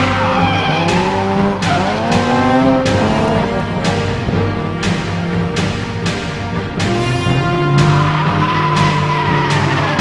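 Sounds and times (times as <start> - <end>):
tyres squealing: 0.0 - 3.2, 7.3 - 10.0
background music: 0.0 - 10.0
car engine revving: 0.0 - 10.0.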